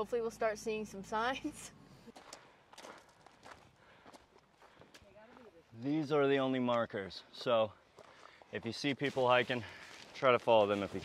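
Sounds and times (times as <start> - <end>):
footsteps on gravel: 2.1 - 6.0, 6.6 - 11.0.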